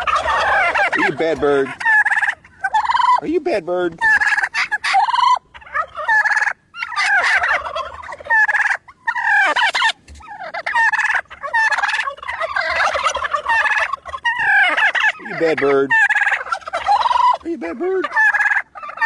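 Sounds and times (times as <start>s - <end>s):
toy turkey gobbling: 0.0s - 19.0s.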